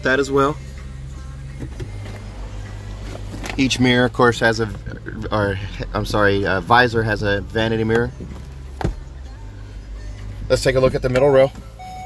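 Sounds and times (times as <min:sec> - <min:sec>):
car engine idling hum: 0:00.0 - 0:12.0.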